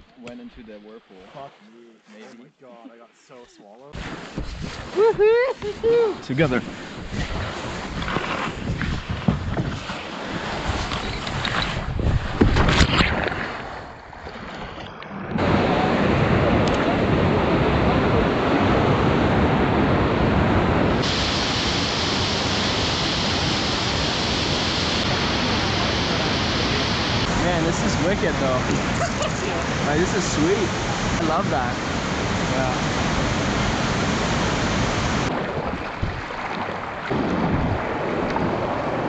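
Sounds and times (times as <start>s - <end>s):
wind on microphone: 4.0s - 39.0s
whitewater rapid rushing: 15.4s - 39.0s.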